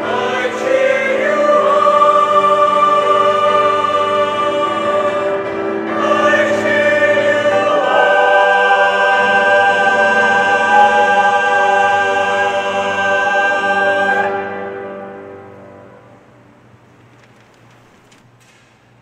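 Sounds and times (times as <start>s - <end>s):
choir singing: 0.0s - 16.3s.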